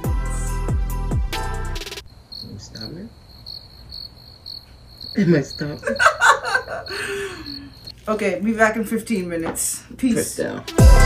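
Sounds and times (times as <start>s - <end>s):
music: 0.0s - 2.0s, 10.5s - 11.0s
cricket chirping: 2.0s - 8.0s.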